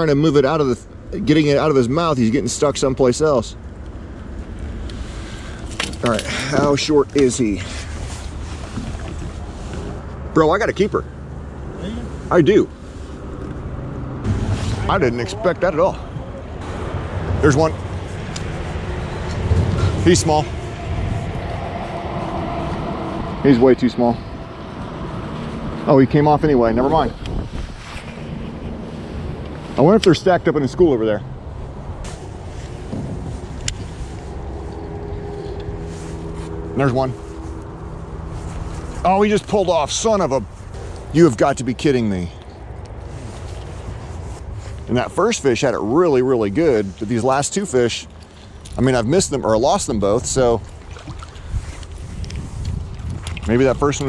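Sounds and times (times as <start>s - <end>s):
wind buffeting microphone: 12.4s - 41.3s, 48.8s - 54.0s.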